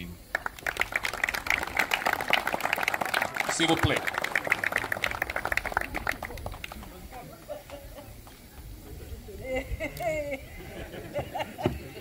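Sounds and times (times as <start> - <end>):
audience applauding: 0.3 - 8.7.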